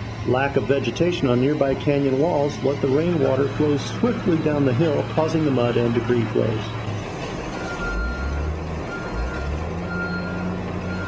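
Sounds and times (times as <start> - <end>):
diesel engine running: 0.0 - 11.0
reversing alarm beeping: 7.5 - 11.0.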